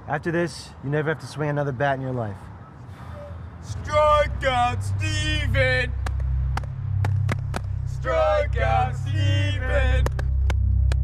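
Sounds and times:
steady low hum: 3.6s - 11.0s
hand claps in chant rhythm: 5.9s - 8.1s, 8.9s - 11.0s.

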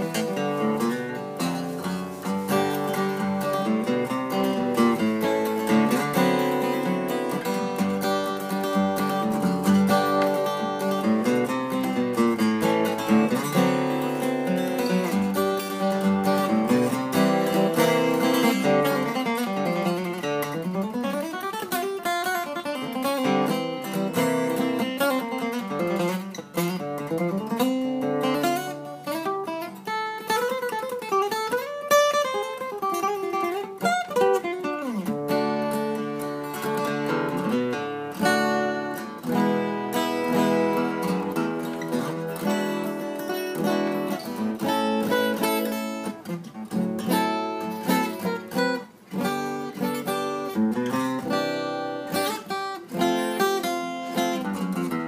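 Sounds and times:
acoustic guitar playing: 0.0s - 55.0s.

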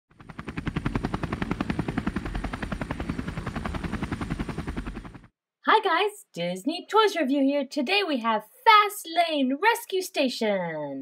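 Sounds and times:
helicopter rotor chopping: 0.1s - 5.3s.

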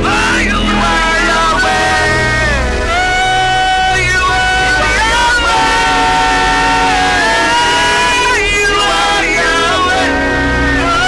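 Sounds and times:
instrumental backing music: 0.0s - 11.0s.

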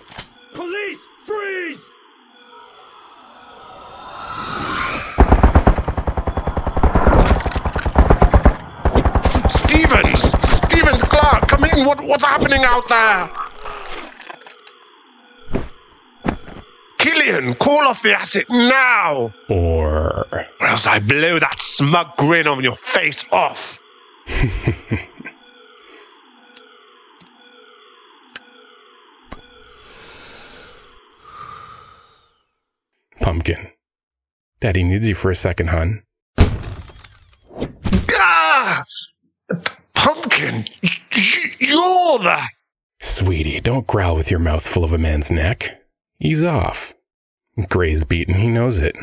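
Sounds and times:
falling sweep: 2.4s - 11.5s
automatic gunfire bursts: 5.2s - 12.0s
person speaking: 9.4s - 13.4s
muffled ambient bed: 15.4s - 17.8s
hiss: 29.7s - 32.3s.

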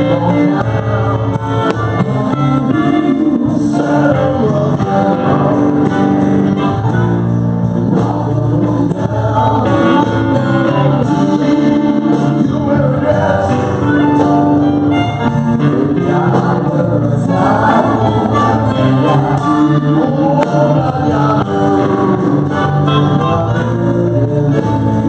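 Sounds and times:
bass guitar: 0.0s - 25.0s
drums: 0.0s - 25.0s
electric guitar: 0.0s - 25.0s.

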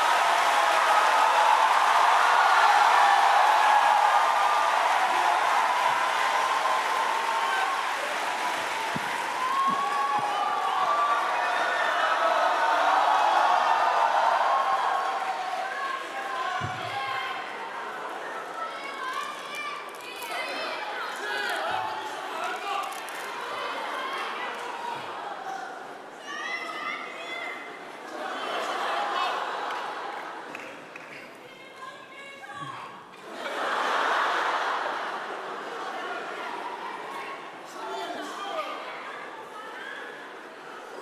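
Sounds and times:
audience applauding and cheering: 0.0s - 20.1s
crowd shouts: 0.0s - 30.0s.

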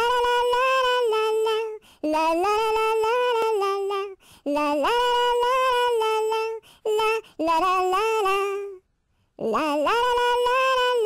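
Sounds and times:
woman singing wordless melody: 0.0s - 8.8s, 9.4s - 11.0s.

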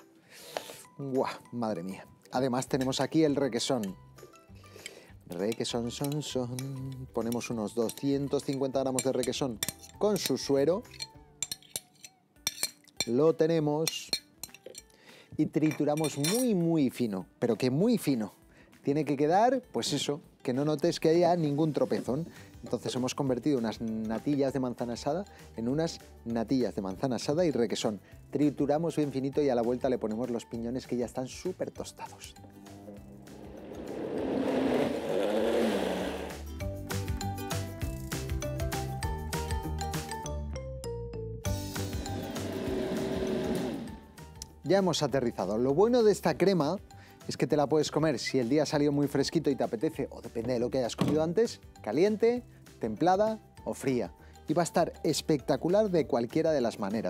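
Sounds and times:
music: 0.0s - 57.0s
spoon clinking on plastic tub: 2.6s - 4.0s, 4.8s - 13.2s, 13.8s - 14.9s, 15.6s - 16.6s
blender running: 33.3s - 36.5s, 41.8s - 44.1s.

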